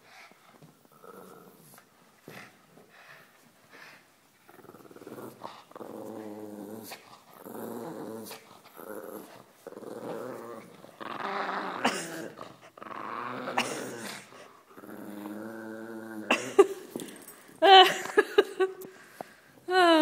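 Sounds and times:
dog growling: 4.4s - 17.3s.

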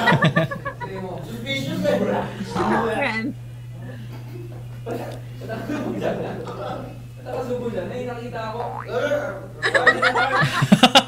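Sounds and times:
people laughing: 0.0s - 1.1s, 3.8s - 7.0s, 9.6s - 11.0s.

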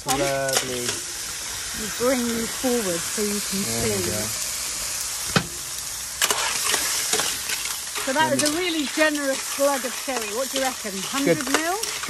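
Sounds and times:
sherry sizzling in a hot pan: 0.0s - 12.0s.

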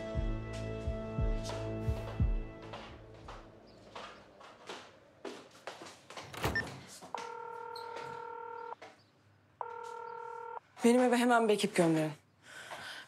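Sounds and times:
phone ringback tone: 7.2s - 8.8s, 9.6s - 10.6s.

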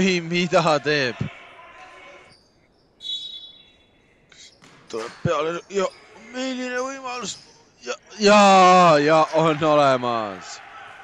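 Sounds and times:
ball thud echoing in hall: 4.6s - 5.5s.

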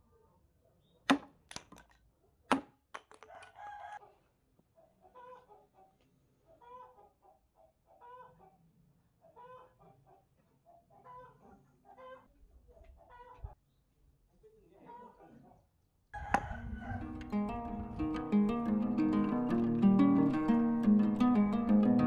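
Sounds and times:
sharp chop or knock: 1.1s - 1.8s, 2.5s - 3.2s
chicken clucking: 4.8s - 8.6s, 9.2s - 13.6s.

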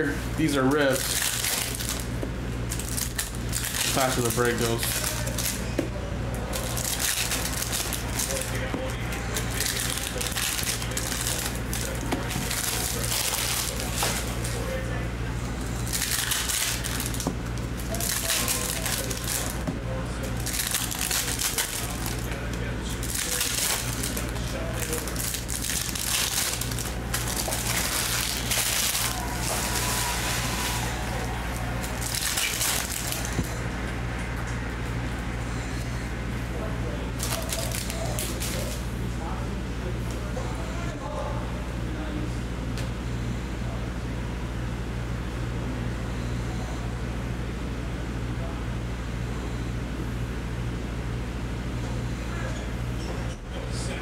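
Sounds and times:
steady low hum: 0.0s - 54.0s
foil wrappers crinkling and tearing: 0.1s - 5.7s, 6.4s - 14.9s, 15.6s - 33.6s, 37.1s - 38.9s.

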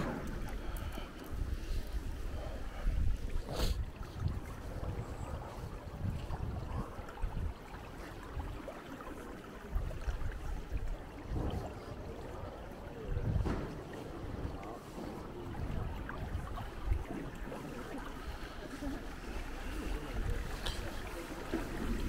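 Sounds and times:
wind buffeting microphone: 0.0s - 8.7s, 9.6s - 18.4s
faint street ambience: 0.0s - 22.0s.

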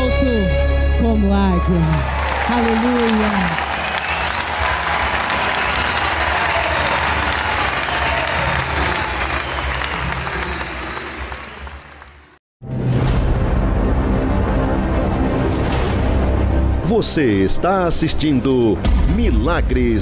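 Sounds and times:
woman's amplified voice: 0.0s - 3.6s
crowd applauding: 1.6s - 12.4s.

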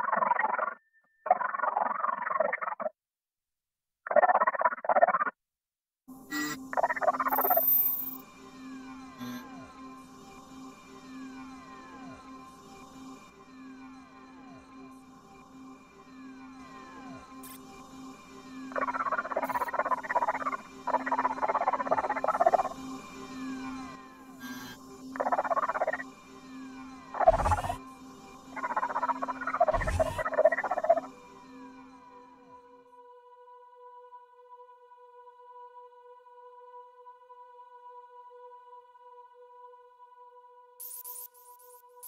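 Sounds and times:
falling electronic tones: 6.3s - 6.6s, 9.2s - 9.5s, 24.4s - 24.8s, 27.2s - 27.8s, 29.7s - 30.2s.

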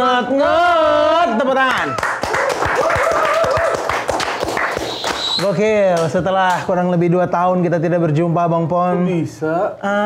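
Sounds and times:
hands clapping: 1.7s - 6.7s.

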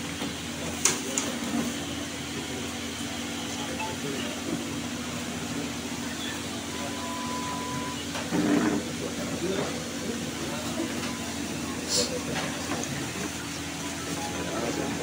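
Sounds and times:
murmur of crowd voices: 0.0s - 15.0s.

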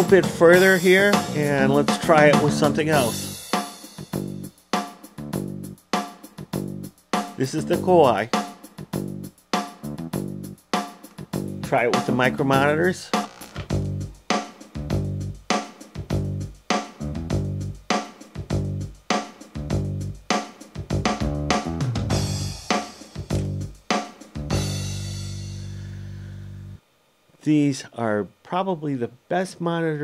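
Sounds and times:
keyboard chords: 0.0s - 3.4s, 6.6s - 8.2s, 9.0s - 10.6s, 11.3s - 14.2s, 19.6s - 23.8s
bass and drums: 0.0s - 26.8s.

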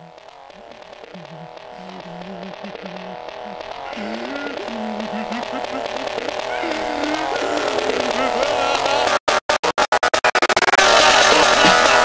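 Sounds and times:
synth melody loop: 0.0s - 9.2s.

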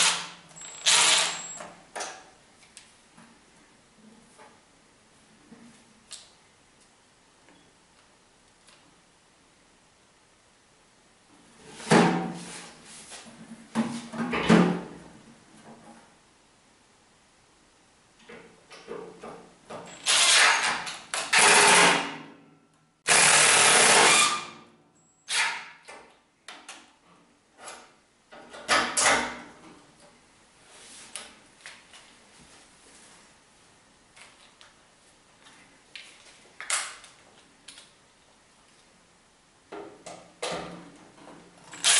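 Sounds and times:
cordless drill driving screws: 0.0s - 1.6s, 20.0s - 20.6s.

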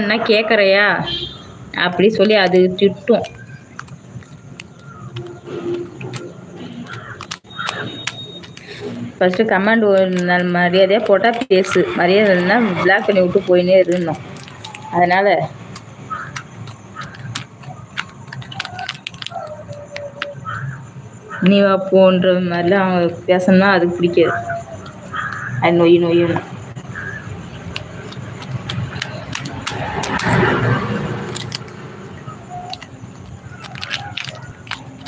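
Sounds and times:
phone handling clicks and rustles: 3.1s - 11.8s, 13.8s - 15.0s, 15.7s - 20.3s, 27.4s - 30.5s, 31.2s - 35.0s.

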